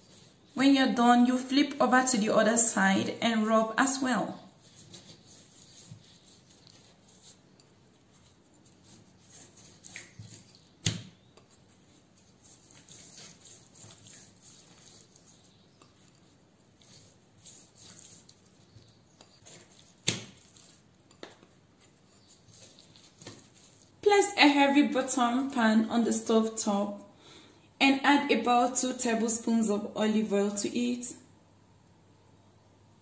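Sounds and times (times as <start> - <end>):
hands rubbing and patting meat: 4.0 - 24.0.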